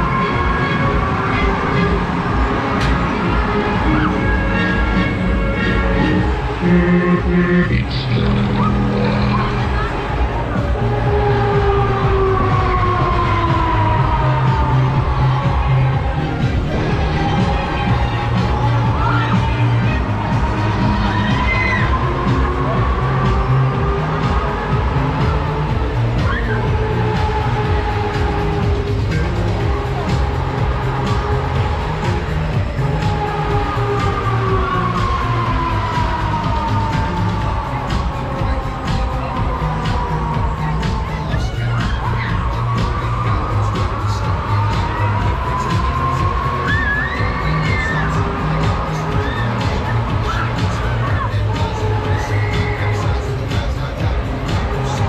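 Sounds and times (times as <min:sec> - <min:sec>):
fairground music with heavy bass: 0:00.0 - 0:55.0
riders shouting and cheering: 0:00.0 - 0:55.0.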